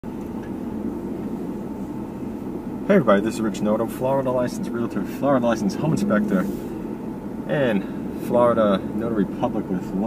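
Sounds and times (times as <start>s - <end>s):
car engine and tyre noise: 0.0s - 10.0s.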